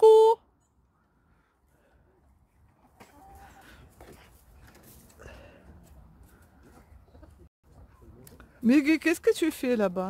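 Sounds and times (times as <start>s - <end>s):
hens clucking: 2.8s - 3.9s.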